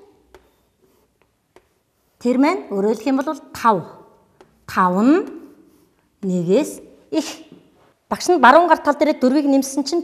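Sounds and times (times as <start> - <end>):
chalk tapping and scratching: 0.0 - 2.7, 4.2 - 6.4.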